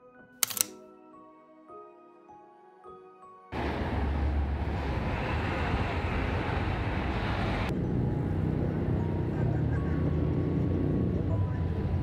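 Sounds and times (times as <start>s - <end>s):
low engine hum: 3.6s - 12.0s
passing vehicles rushing: 3.6s - 12.0s.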